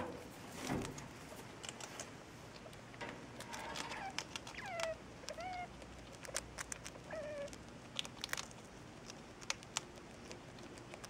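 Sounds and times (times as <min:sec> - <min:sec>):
degus squeaking: 0:03.4 - 0:05.7.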